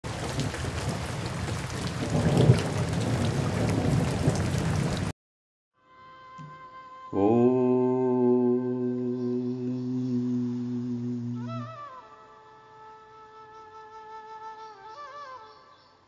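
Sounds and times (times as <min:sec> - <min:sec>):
steady rain: 0:00.0 - 0:05.1
rumbling thunder: 0:00.1 - 0:05.1.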